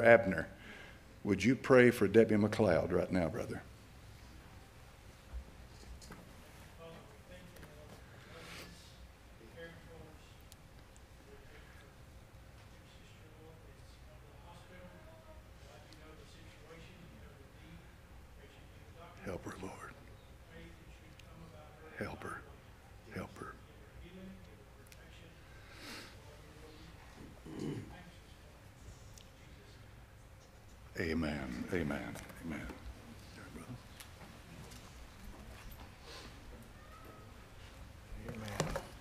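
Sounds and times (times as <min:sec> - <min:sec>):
distant man speaking a prayer: 0:12.6 - 0:25.6, 0:30.9 - 0:33.9.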